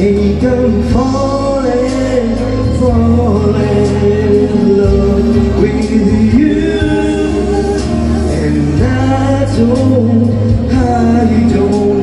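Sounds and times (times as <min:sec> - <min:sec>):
backing music over speakers: 0:00.0 - 0:12.0
man singing karaoke: 0:00.0 - 0:12.0.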